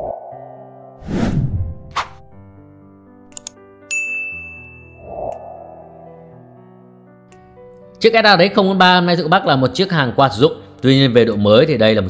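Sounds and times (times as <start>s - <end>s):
soft background music: 0.0s - 12.0s
notification bell ding: 3.9s - 5.0s.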